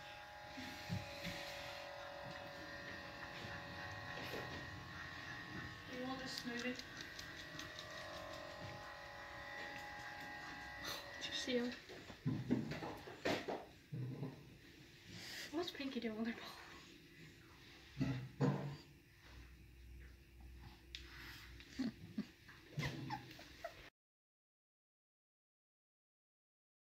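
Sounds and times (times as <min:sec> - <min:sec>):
dog whimpering: 0:21.7 - 0:23.9.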